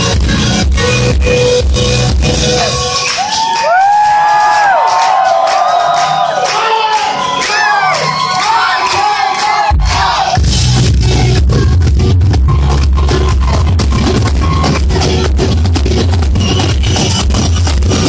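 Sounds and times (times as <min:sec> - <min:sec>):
live rock band playing: 0:00.0 - 0:03.3
crowd cheering and whooping: 0:02.4 - 0:11.4, 0:12.1 - 0:15.2.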